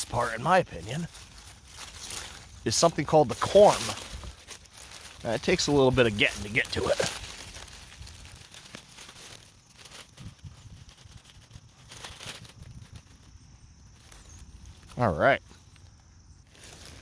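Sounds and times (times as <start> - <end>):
fingers scratching in soil: 0.0 - 13.3
dry leaves crackling: 0.0 - 17.0.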